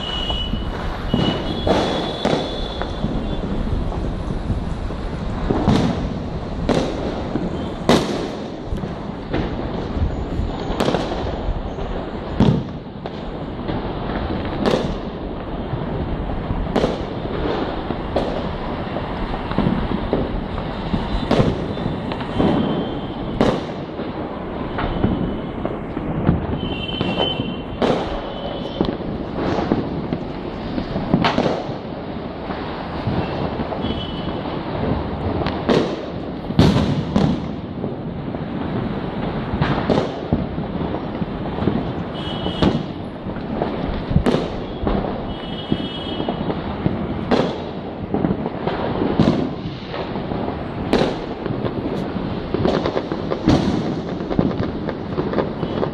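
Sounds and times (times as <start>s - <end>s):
distant fireworks crackling: 0.0s - 55.9s
sharp firecracker bangs: 0.0s - 55.9s.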